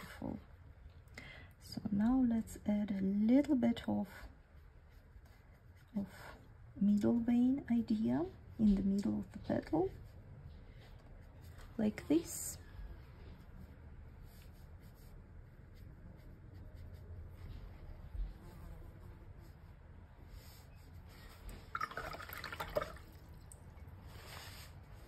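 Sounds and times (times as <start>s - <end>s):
faint room hum: 0.0s - 25.0s
brush swishing on paper: 2.9s - 21.8s, 22.8s - 25.0s.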